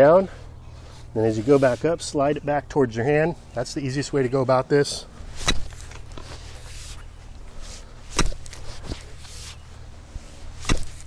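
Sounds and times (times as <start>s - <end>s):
pickaxe striking hard soil: 5.3s - 6.1s, 8.1s - 9.3s, 10.6s - 11.0s.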